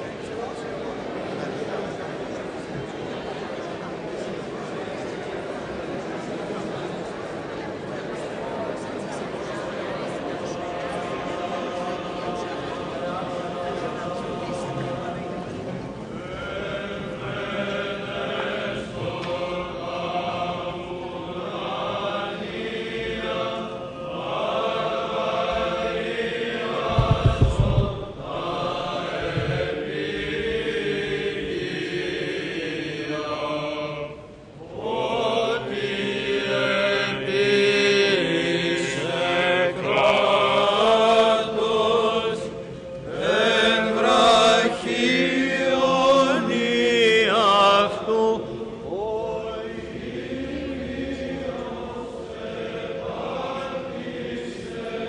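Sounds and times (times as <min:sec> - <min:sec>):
low thumping: 0:26.8 - 0:28.6
men chanting: 0:43.1 - 0:55.0.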